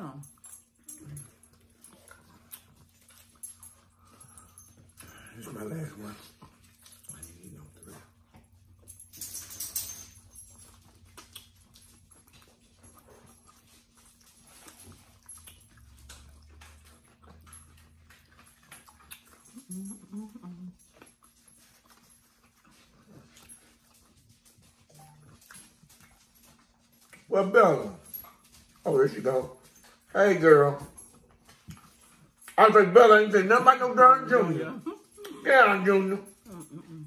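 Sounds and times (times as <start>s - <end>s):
dog eating: 0.1s - 9.2s, 10.1s - 37.0s
dog whimpering faintly: 19.4s - 20.9s, 36.3s - 37.0s.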